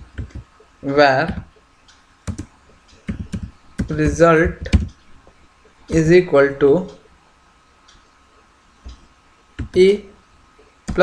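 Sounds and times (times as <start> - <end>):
computer keyboard typing: 0.0 - 1.6, 2.2 - 5.1, 9.6 - 10.0.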